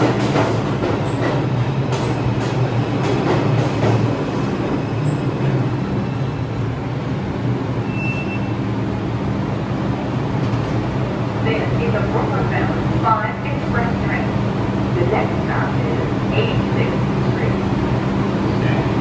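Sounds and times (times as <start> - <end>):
subway train low hum: 0.0 - 19.0
short high squeal: 7.8 - 8.6.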